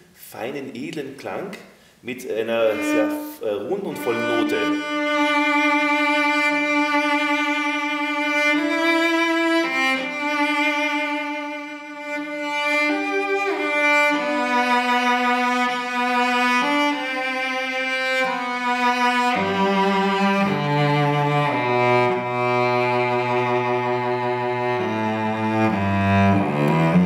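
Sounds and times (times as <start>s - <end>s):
bowed cello melody: 2.3s - 27.0s.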